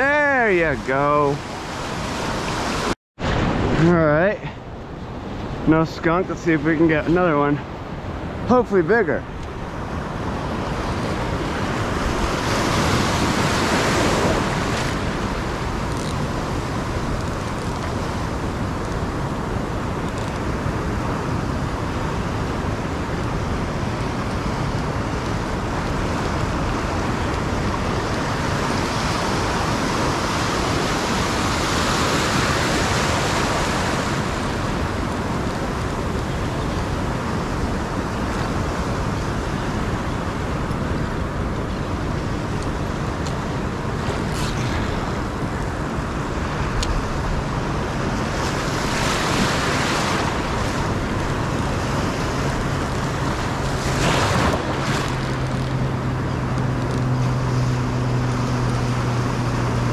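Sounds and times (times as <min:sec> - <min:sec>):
ocean surf washing around legs: 0:00.0 - 0:59.9.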